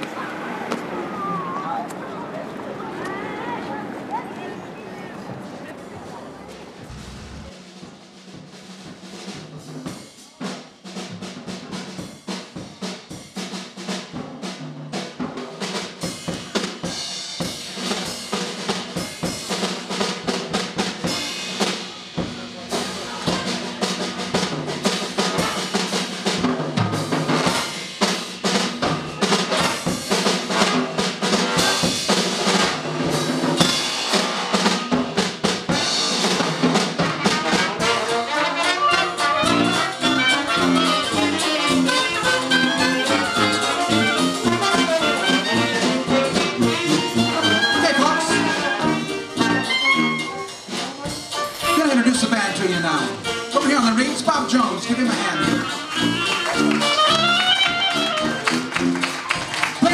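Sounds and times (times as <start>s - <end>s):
drum kit playing: 6.8s - 59.9s.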